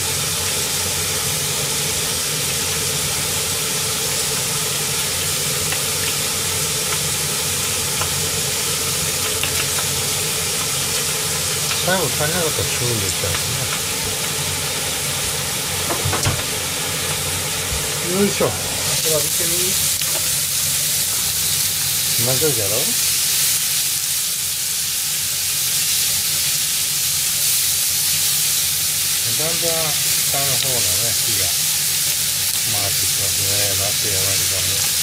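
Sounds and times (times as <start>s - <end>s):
food sizzling in a frying pan: 0.0s - 35.0s.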